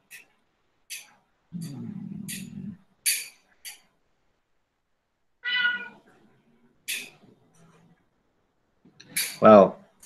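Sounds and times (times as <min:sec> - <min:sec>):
short high-pitched cat meow: 0:05.4 - 0:06.0.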